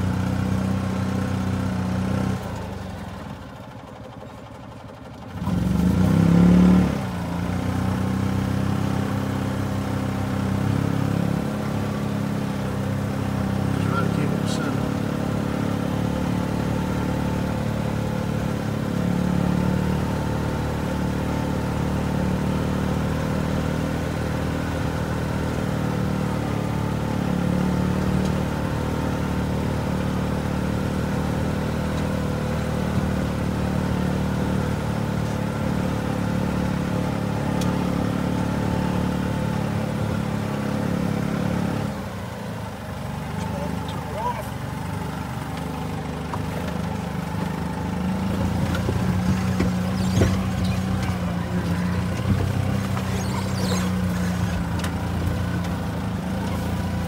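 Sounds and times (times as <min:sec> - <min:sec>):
golf cart engine revving: 0:00.0 - 0:57.0.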